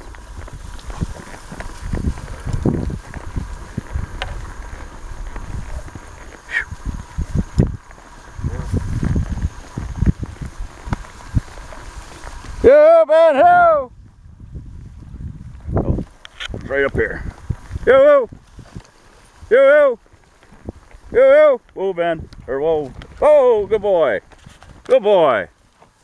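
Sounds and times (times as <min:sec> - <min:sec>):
hoof thumps: 0:00.0 - 0:12.9
wind buffeting microphone: 0:00.0 - 0:25.4
grass rustling: 0:00.0 - 0:26.0
wavering high call: 0:06.4 - 0:06.8.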